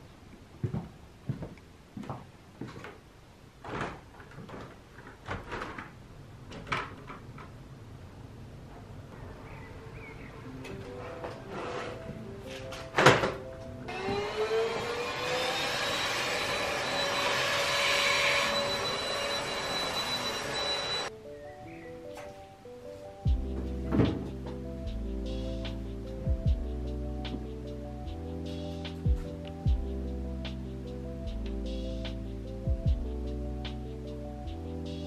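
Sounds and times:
background music: 0:09.3 - 0:15.5, 0:18.2 - 0:35.0
handheld vacuum cleaner running: 0:13.9 - 0:21.1.

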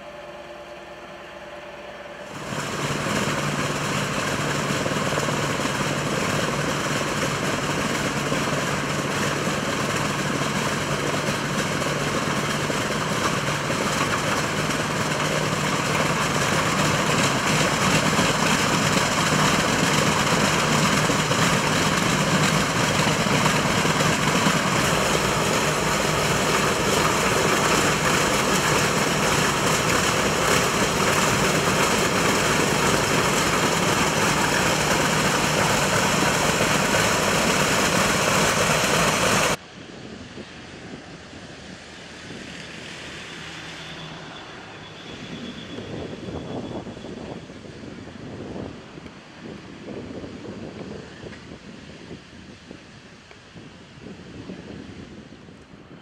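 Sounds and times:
propeller engines droning: 0:00.0 - 0:56.0.

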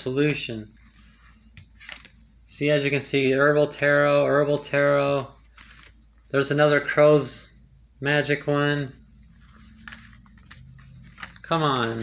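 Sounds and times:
cards scraping: 0:00.2 - 0:02.2, 0:02.9 - 0:06.0, 0:09.2 - 0:12.0.

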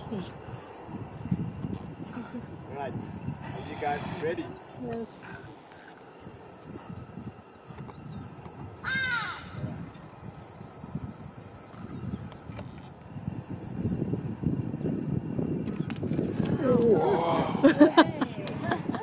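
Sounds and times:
bird cawing: 0:08.8 - 0:09.6.

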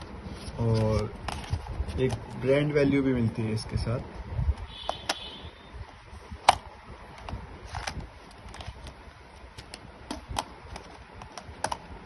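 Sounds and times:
plastic earphones clicking: 0:09.6 - 0:11.9.

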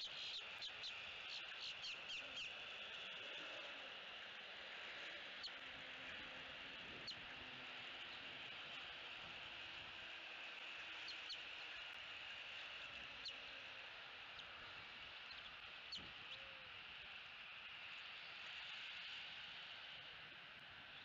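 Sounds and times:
eaglets chirping: 0:00.0 - 0:02.6
steady high hiss: 0:00.0 - 0:21.0.

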